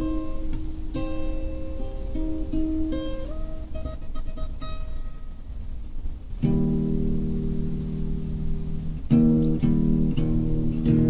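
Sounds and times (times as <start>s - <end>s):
guitar strums: 0.0s - 11.0s
low steady hum: 0.0s - 11.0s.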